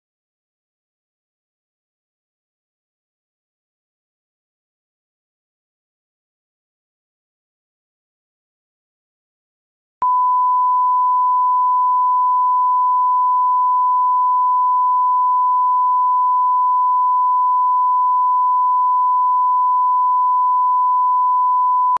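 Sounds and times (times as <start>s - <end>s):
sine test tone: 10.0s - 22.0s.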